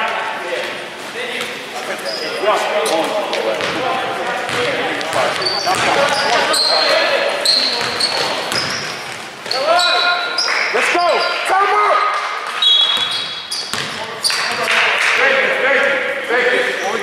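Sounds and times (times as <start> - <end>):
sneakers squeaking: 0.6 - 15.0
basketball bouncing on court: 3.5 - 9.6, 12.5 - 14.8.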